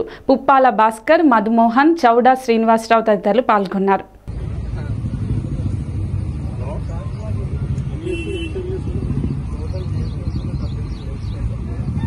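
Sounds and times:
low outdoor rumble: 4.2s - 12.0s
faint indistinct voices: 9.3s - 12.0s.

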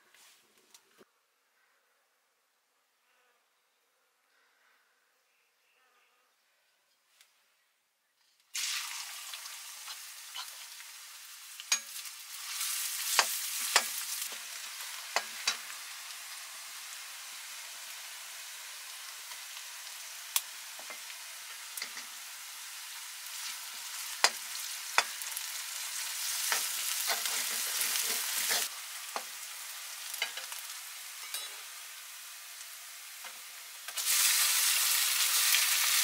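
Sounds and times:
onions sizzling in hot oil: 8.6s - 36.0s
metal spoon scraping a pan: 9.8s - 10.7s, 26.4s - 28.7s, 31.2s - 31.7s.

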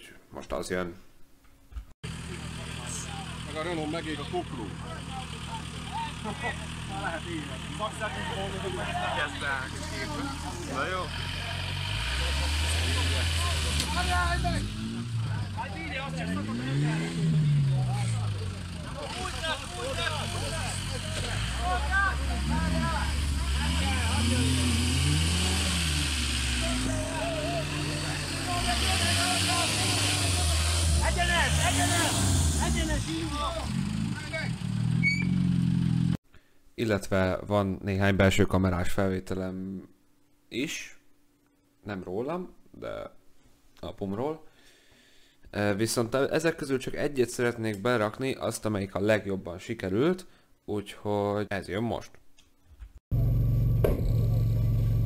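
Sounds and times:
car engine revving: 2.1s - 36.2s
crowd talking: 2.2s - 25.8s, 26.5s - 33.7s.

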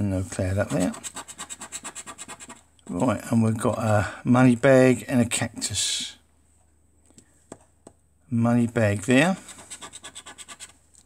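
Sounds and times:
coin scraping scratchcard: 9.5s - 10.8s.

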